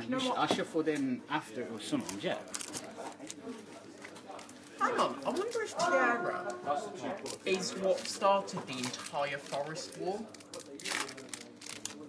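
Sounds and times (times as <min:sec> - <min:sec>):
foil wrapper crinkling: 0:02.0 - 0:05.8, 0:07.2 - 0:12.0.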